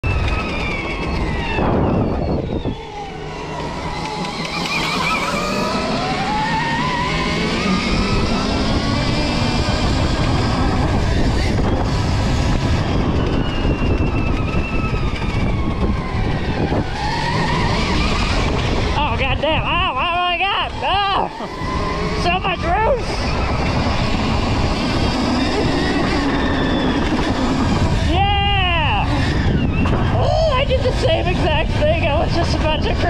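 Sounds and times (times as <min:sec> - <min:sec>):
dirt bike engine revving: 0:03.2 - 0:13.0.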